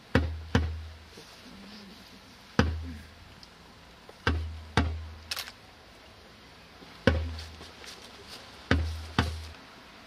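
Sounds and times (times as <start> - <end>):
heavy drum beats: 0.0 - 0.9, 2.6 - 3.0, 4.2 - 5.2, 7.0 - 7.7, 8.6 - 9.6.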